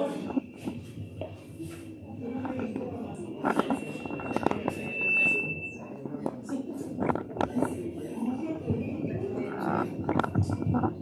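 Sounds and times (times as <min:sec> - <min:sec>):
murmur and rustle of congregation: 0:00.0 - 0:11.0
high feedback whistle: 0:03.5 - 0:06.1.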